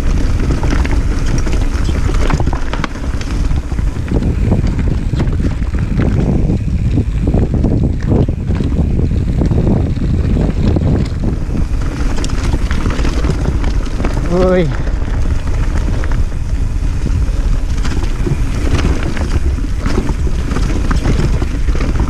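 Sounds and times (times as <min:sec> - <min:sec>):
bike rattling over stones: 0:00.0 - 0:22.0
wind rumbling on microphone: 0:00.0 - 0:22.0.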